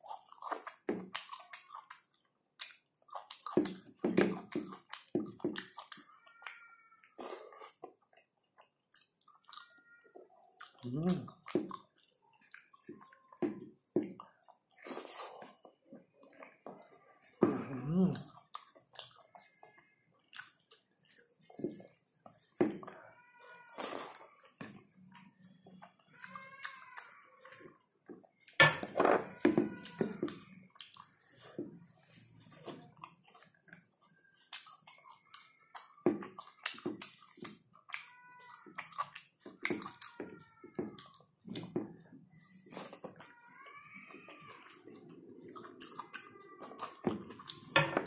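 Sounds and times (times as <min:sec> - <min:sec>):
wet chewing and lip-smacking: 0:00.0 - 0:09.8, 0:10.4 - 0:17.0, 0:17.9 - 0:22.9, 0:23.7 - 0:28.6, 0:29.4 - 0:43.3, 0:44.0 - 0:47.7
eating clicks and smacks: 0:00.1 - 0:06.6
cat meowing: 0:06.1 - 0:07.0.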